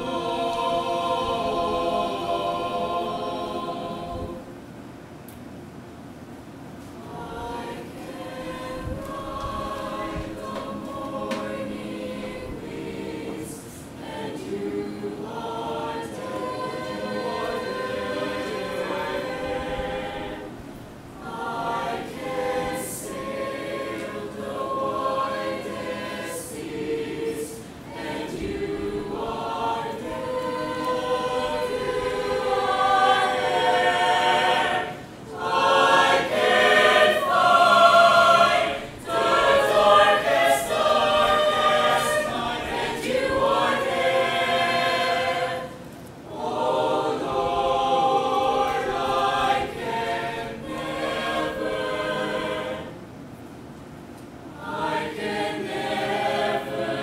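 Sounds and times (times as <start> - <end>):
mixed choir singing: 0.0 - 4.7, 7.0 - 53.2, 54.5 - 57.0.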